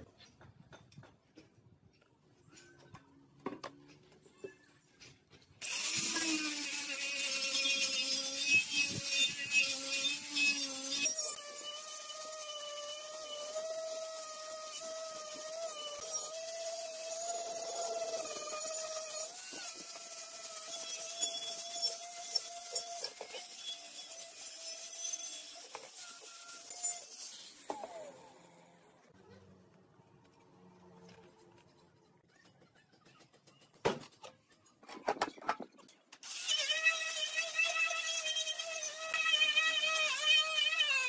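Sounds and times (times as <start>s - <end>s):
angle grinder motor whine: 5.6s - 24.2s, 36.3s - 41.0s.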